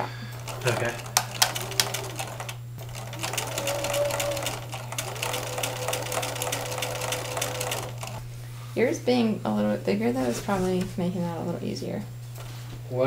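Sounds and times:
sewing machine stitching: 0:00.3 - 0:08.2.

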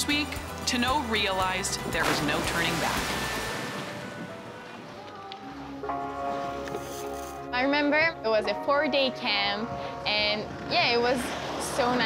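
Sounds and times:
soft background music: 0:00.0 - 0:12.0
rushing water splash: 0:01.7 - 0:04.7.

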